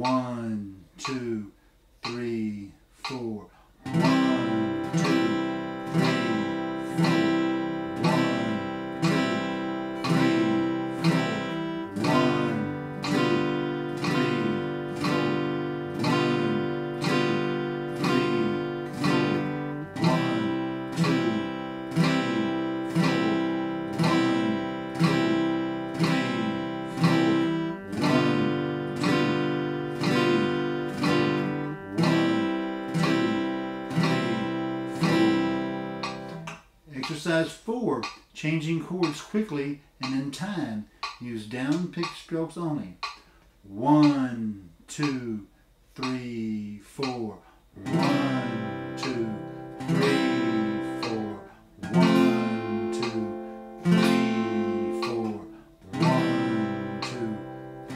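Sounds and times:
acoustic guitar strumming: 3.8s - 37.5s, 47.8s - 57.9s.

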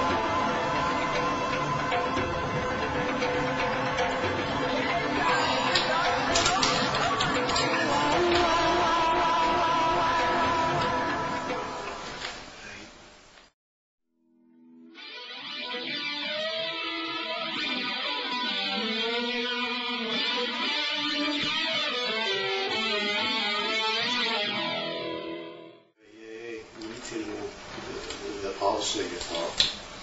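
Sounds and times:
guitar with plucked ringing notes: 14.4s - 25.8s.

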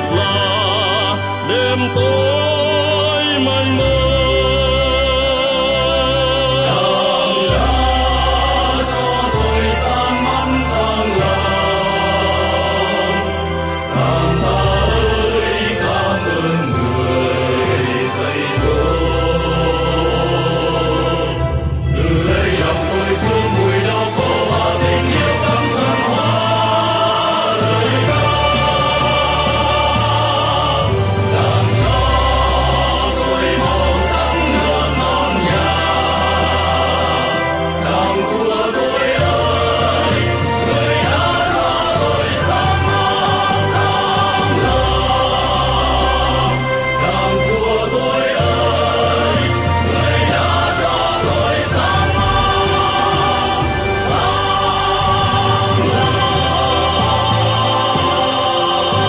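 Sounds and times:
male vocal quartet singing: 0.0s - 59.0s.

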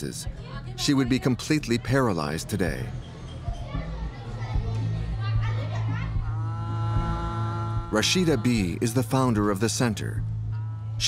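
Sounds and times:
soft background music: 0.0s - 11.0s
children chattering: 2.7s - 6.6s.

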